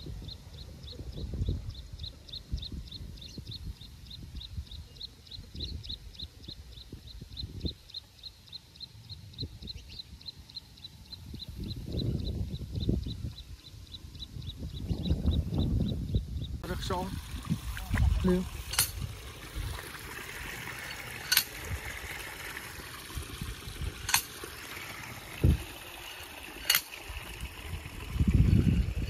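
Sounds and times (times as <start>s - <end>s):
wind gusting on microphone: 0.0s - 8.0s, 11.0s - 20.8s, 21.5s - 24.5s, 25.1s - 26.4s, 27.0s - 29.0s.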